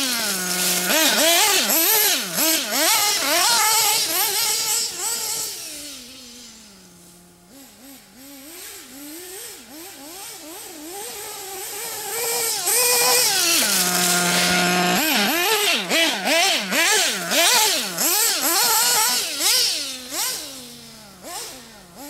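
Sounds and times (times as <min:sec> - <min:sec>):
model car engine revving: 0:00.0 - 0:22.0.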